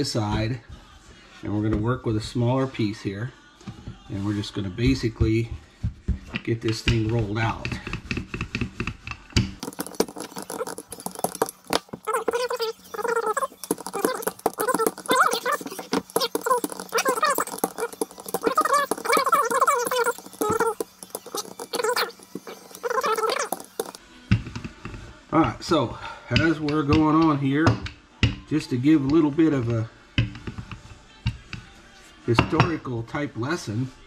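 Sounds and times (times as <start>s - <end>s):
rolling pin rolling dough: 3.6s - 25.6s
high wavering voice-like sound: 9.6s - 24.0s.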